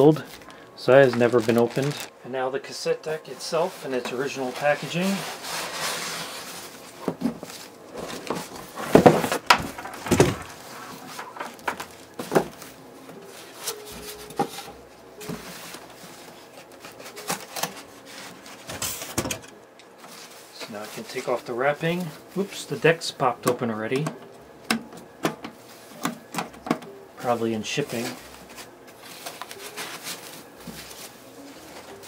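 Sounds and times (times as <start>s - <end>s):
bubble wrap and foam rustling: 0.0s - 2.2s, 3.0s - 19.4s, 20.0s - 24.0s, 27.2s - 32.0s
styrofoam rubbing: 3.6s - 11.6s, 13.2s - 19.1s, 27.2s - 32.0s
knocks and thumps on cardboard box: 8.2s - 10.5s.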